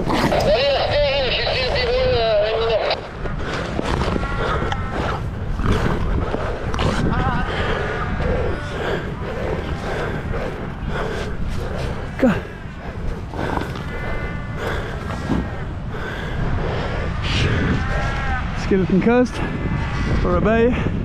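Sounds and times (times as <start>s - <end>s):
seals calling: 0.0s - 19.9s
steady low rumble: 0.0s - 21.0s.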